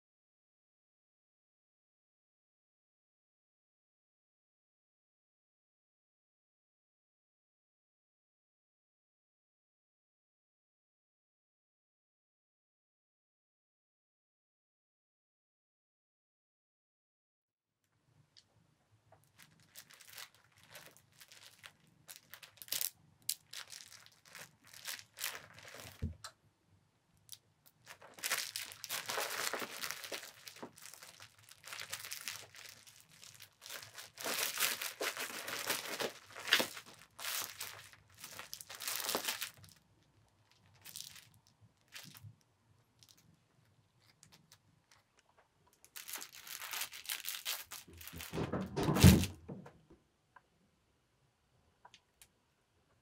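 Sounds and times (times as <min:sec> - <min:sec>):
toy crinkling and rustling: 0:19.2 - 0:26.2, 0:27.3 - 0:42.4, 0:43.0 - 0:49.4.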